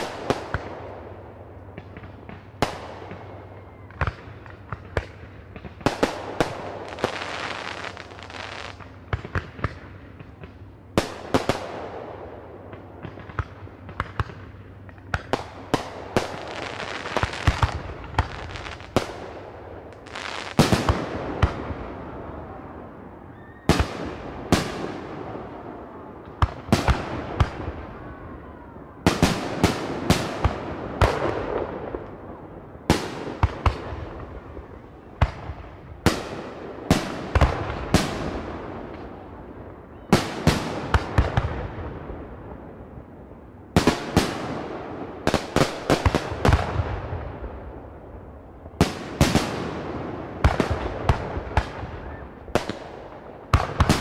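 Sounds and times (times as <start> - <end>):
fireworks bangs echoing: 48.8 - 54.0.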